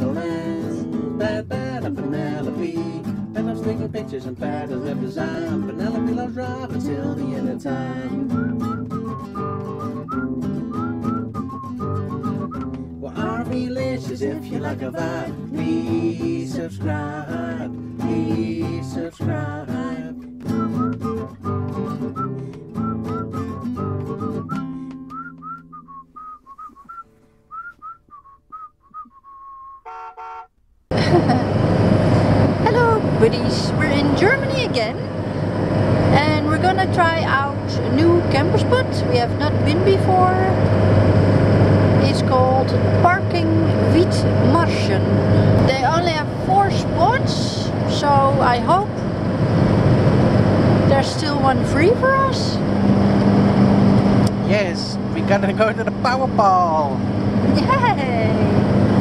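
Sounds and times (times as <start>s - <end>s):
engine and road noise in a van: 0.0s - 27.8s, 30.5s - 59.0s
whistled tune over guitar: 7.8s - 13.3s, 20.4s - 29.8s
person talking: 32.6s - 35.1s, 36.1s - 40.6s, 41.9s - 49.0s, 50.9s - 52.6s, 54.4s - 58.6s.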